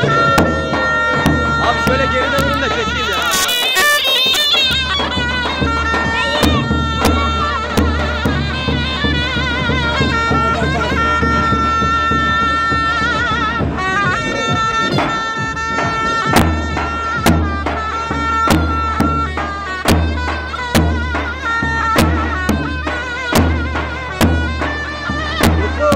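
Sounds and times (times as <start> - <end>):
deep drum strokes: 0.0 - 3.8
shawm playing a dance tune: 0.0 - 25.9.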